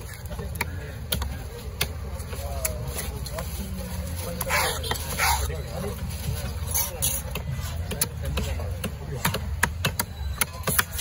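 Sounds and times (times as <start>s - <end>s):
murmur of voices: 0.0s - 11.0s
cleaver scraping wooden block: 6.4s - 8.6s.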